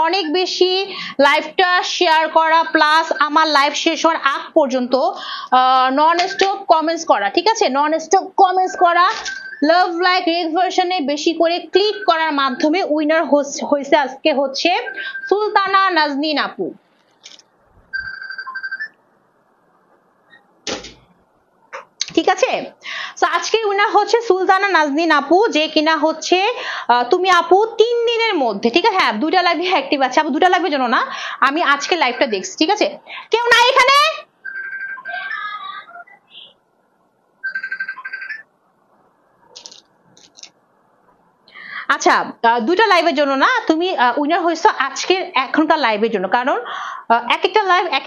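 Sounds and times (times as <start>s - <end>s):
phone alert beeping: 6.1s - 6.7s, 8.7s - 9.7s, 11.8s - 12.8s, 14.8s - 15.6s, 17.9s - 19.0s, 34.4s - 36.5s, 37.4s - 38.4s.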